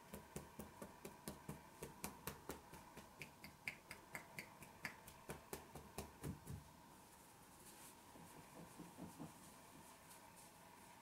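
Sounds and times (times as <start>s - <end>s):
fingertips tapping on head: 0.0s - 6.7s, 8.2s - 9.5s.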